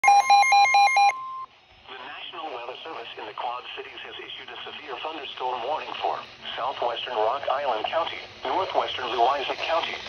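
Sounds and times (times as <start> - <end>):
steady warning alarm tone: 0.0 - 1.4
rapid loud beeps: 0.0 - 1.5.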